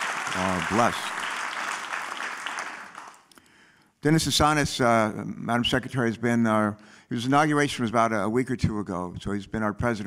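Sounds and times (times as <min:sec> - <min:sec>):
audience applause: 0:00.0 - 0:03.3.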